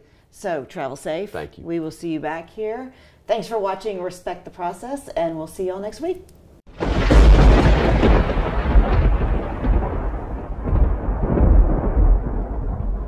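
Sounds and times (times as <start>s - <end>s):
thunder-like rumble: 6.7s - 13.0s.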